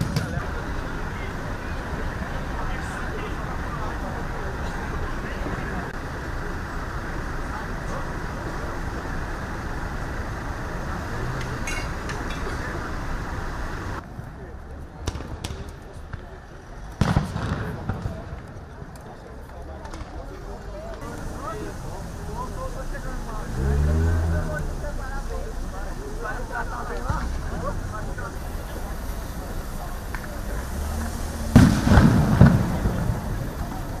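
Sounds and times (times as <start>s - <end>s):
street noise: 0.0s - 34.0s
voices: 0.0s - 34.0s
sharp bangs: 31.5s - 33.8s.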